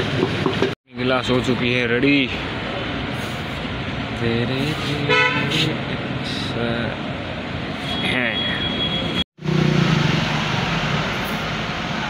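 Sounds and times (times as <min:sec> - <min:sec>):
street traffic noise: 0:00.0 - 0:12.0
vehicle horn honk: 0:05.1 - 0:05.7.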